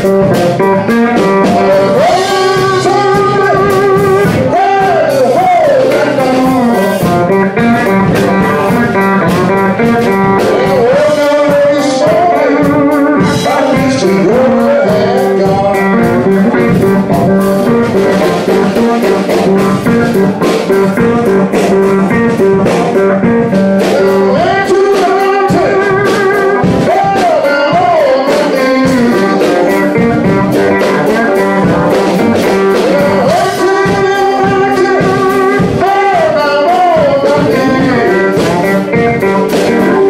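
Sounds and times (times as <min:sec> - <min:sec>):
live blues band playing: 0:00.0 - 0:40.0
man singing: 0:00.0 - 0:40.0.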